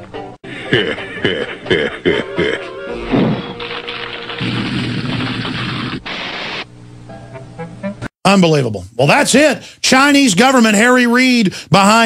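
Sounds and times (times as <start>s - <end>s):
background music: 0.0s - 4.4s, 7.1s - 8.1s
cartoon flamethrower firing: 4.2s - 6.6s.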